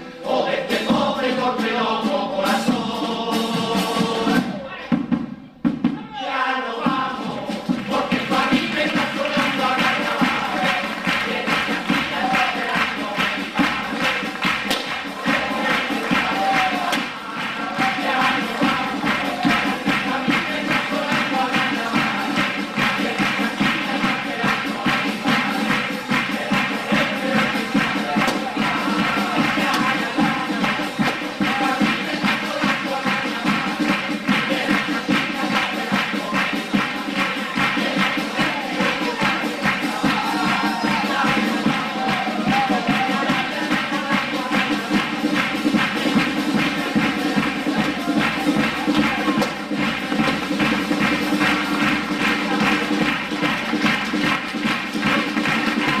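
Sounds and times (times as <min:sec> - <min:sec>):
choir singing together: 0:00.0 - 0:04.9, 0:05.9 - 0:56.0
drum beat: 0:00.3 - 0:56.0.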